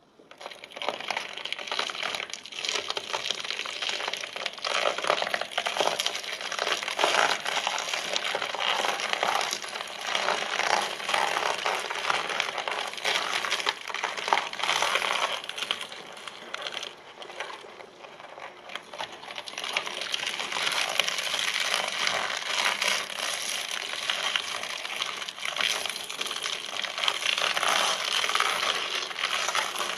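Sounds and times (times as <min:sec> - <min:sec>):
shredder crunching vegetables: 0:00.0 - 0:29.9.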